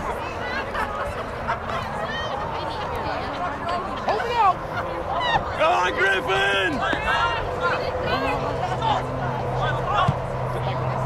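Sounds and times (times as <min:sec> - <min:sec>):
people calling out: 0:00.0 - 0:11.0
steady low hum: 0:00.0 - 0:11.0.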